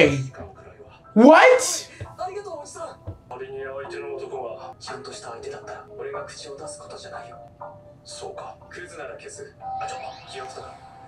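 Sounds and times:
background music: 0:00.0 - 0:11.0
character dialogue: 0:01.2 - 0:02.0.

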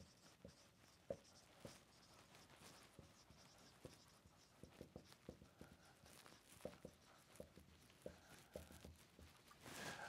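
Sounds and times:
marker scratching on whiteboard: 0:00.0 - 0:09.4
marker tapping on whiteboard: 0:03.0 - 0:09.3.

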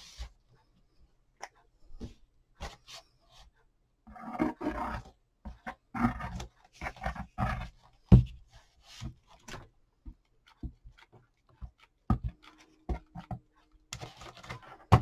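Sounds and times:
cardboard box knocks and thumps: 0:08.1 - 0:08.4, 0:14.8 - 0:15.0.

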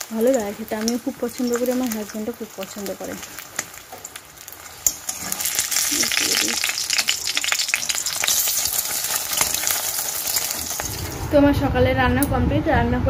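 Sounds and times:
spatula in pan: 0:00.0 - 0:11.2
egg sizzling in hot oil: 0:00.0 - 0:11.4.

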